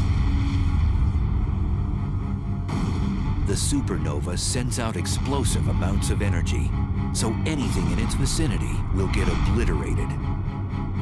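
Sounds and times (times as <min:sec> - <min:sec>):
deep rumbling explosion effect: 0:00.0 - 0:10.2.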